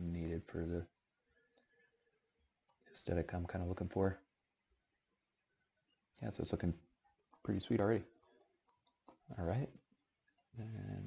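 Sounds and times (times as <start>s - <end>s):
person speaking: 7.4s - 8.2s.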